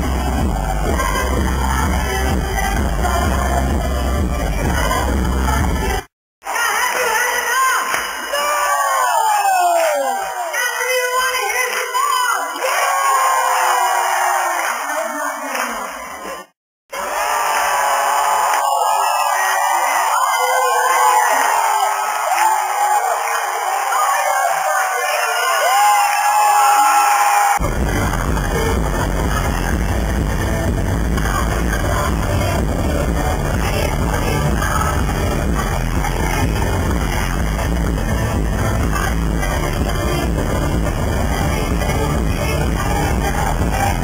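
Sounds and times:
crowd screaming and whooping: 0.0 - 2.3, 6.5 - 10.7, 12.4 - 44.0
electronic pop music with heavy bass: 0.0 - 7.3, 27.5 - 44.0.

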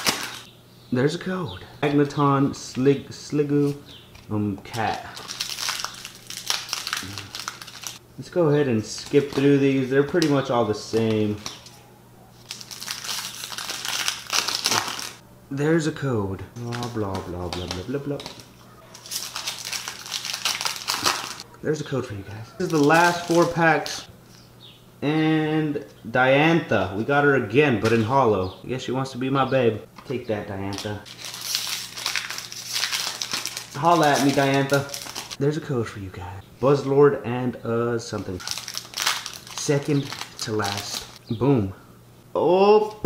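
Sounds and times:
foil wrapper crinkling: 0.0 - 0.5, 4.7 - 8.0, 8.9 - 15.2, 16.6 - 21.4, 22.6 - 24.1, 30.7 - 35.4, 38.2 - 41.2.

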